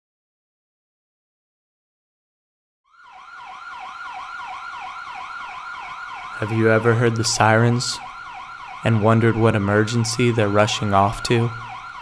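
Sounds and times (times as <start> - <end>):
police siren yelping: 2.9 - 12.0.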